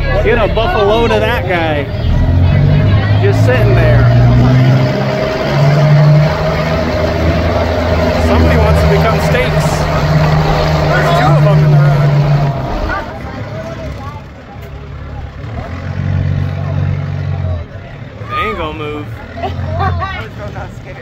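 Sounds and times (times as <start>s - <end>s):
passengers talking: 0.0s - 21.0s
truck engine droning: 0.0s - 21.0s.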